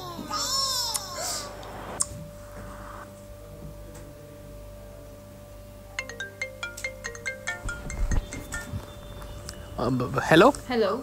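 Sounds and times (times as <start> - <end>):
mobile phone ringtone: 6.0 - 9.4.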